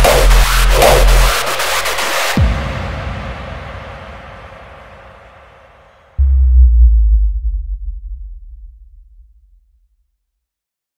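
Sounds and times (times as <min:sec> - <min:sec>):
reverberant tail of electronic track: 0:00.0 - 0:09.7
deep bass boom: 0:06.2 - 0:09.9.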